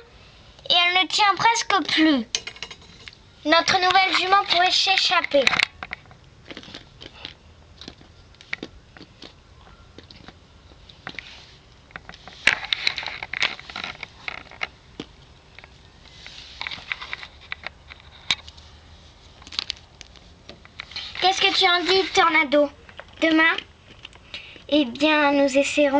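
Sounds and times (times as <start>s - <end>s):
rustling scrapes: 11.0s - 14.7s, 16.0s - 22.4s.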